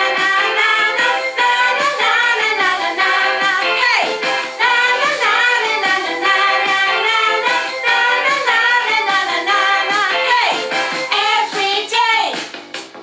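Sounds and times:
voices singing: 0.0s - 12.4s
musical accompaniment: 0.0s - 13.0s.

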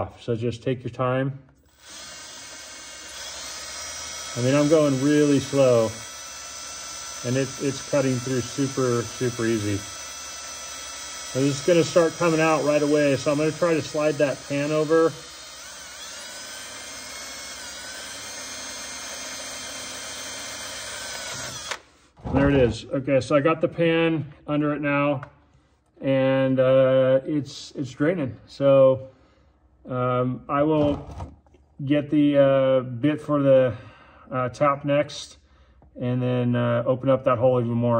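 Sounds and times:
cordless drill cutting metal: 1.6s - 21.9s.

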